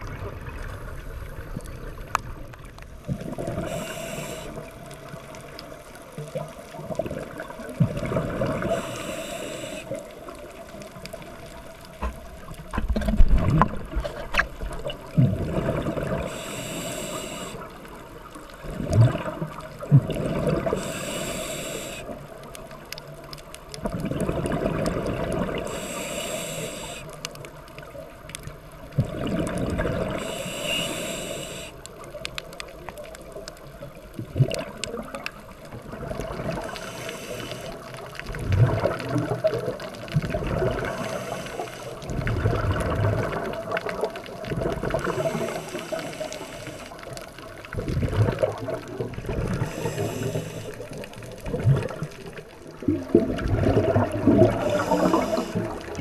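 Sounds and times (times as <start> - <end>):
diver regulator inhale hiss: 3.4 - 4.8, 8.4 - 10.2, 16.1 - 18.0, 20.6 - 22.4, 25.5 - 27.2, 30.1 - 32.0, 36.4 - 38.1, 40.7 - 42.2, 44.9 - 47.2, 49.4 - 51.1, 54.3 - 56.0
exhaust bubbles rumbling: 52.8 - 56.0.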